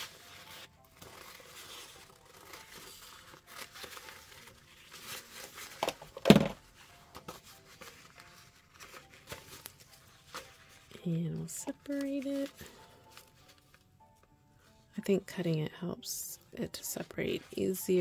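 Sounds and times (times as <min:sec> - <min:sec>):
paper napkin rustling: 0:00.0 - 0:05.8, 0:06.7 - 0:14.8.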